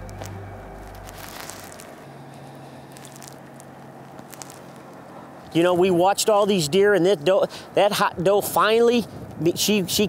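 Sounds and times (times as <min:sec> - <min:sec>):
hooves stepping through dry leaves: 0:00.0 - 0:05.8
faint low hum: 0:00.0 - 0:06.0.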